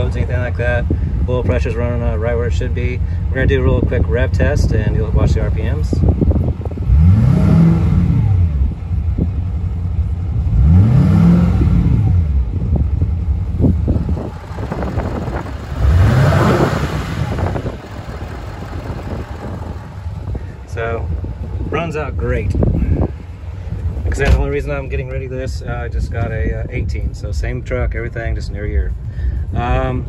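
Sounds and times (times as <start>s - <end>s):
diesel engine revving: 0.0s - 26.9s
diesel engine idling: 0.0s - 30.0s.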